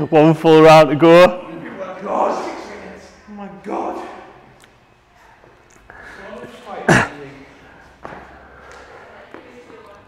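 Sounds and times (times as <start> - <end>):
faint voices: 1.6 - 10.0.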